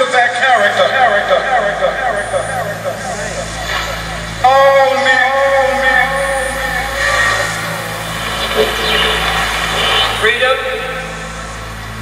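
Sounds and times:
orator's voice over loudspeakers: 0:00.0 - 0:11.7
low hum: 0:00.0 - 0:12.0.

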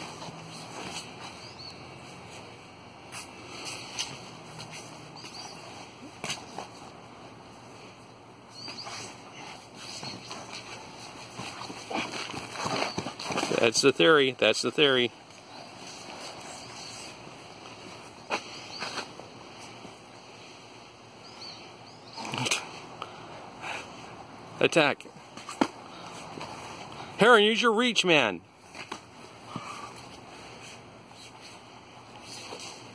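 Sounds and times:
steady background hiss: 0:00.0 - 0:32.9.

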